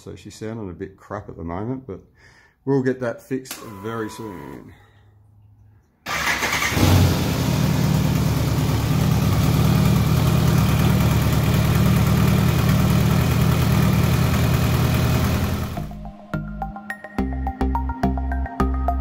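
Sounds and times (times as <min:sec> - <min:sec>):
motorcycle engine starting and idling: 0:06.1 - 0:16.0.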